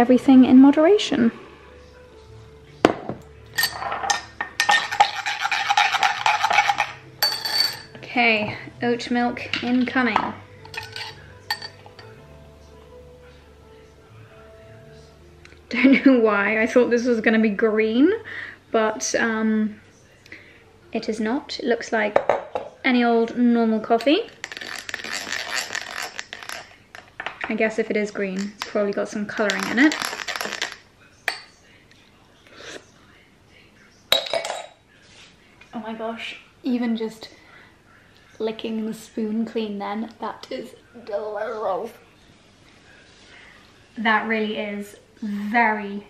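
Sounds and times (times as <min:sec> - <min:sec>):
metal clinking on glass: 0:03.5 - 0:08.0, 0:10.6 - 0:12.2, 0:34.2 - 0:34.8
spoon stirring in glass: 0:03.5 - 0:08.0, 0:10.6 - 0:12.2, 0:24.0 - 0:27.3, 0:28.3 - 0:31.6.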